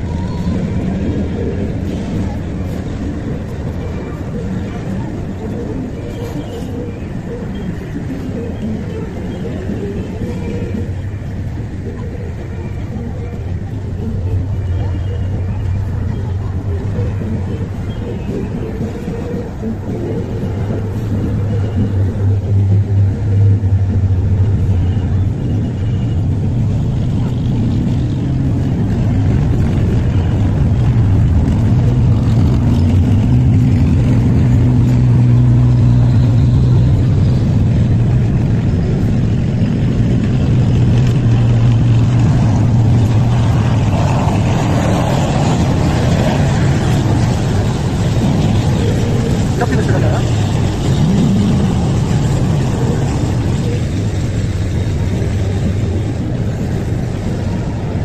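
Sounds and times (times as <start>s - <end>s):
heavy diesel vehicles driving past: 0.0s - 58.0s.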